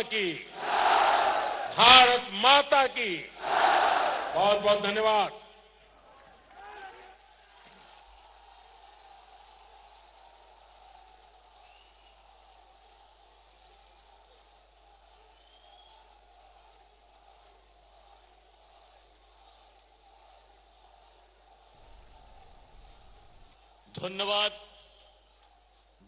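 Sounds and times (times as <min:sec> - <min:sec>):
faint high whistles: 0:11.6 - 0:12.4, 0:13.4 - 0:14.5, 0:15.1 - 0:16.3, 0:21.8 - 0:23.6.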